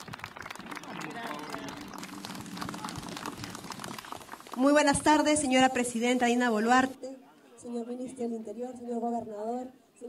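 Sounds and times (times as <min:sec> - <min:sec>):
crowd applauding: 0:00.0 - 0:06.1.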